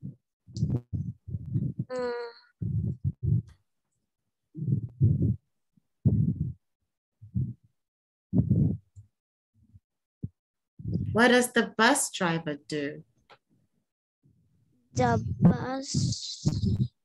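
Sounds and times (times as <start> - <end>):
muffled puffs and thumps: 0.0 - 2.0, 2.6 - 3.6, 4.6 - 5.4, 8.4 - 8.8, 15.0 - 16.9
person saying uh: 1.9 - 2.4, 15.0 - 16.9.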